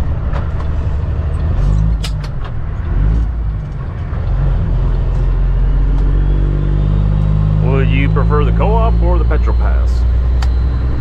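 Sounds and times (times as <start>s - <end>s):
truck diesel engine revving: 2.8s - 11.0s.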